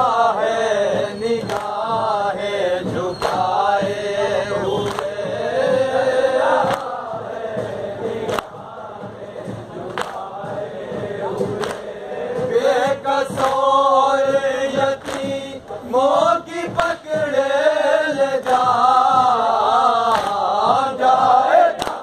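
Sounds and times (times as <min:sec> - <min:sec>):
men chanting a mourning lament: 0:00.0 - 0:22.0
sharp slaps: 0:01.4 - 0:02.2, 0:02.9 - 0:04.0, 0:04.7 - 0:05.2, 0:06.0 - 0:08.6, 0:09.8 - 0:10.6, 0:11.4 - 0:12.6, 0:13.3 - 0:15.6, 0:18.4 - 0:22.0.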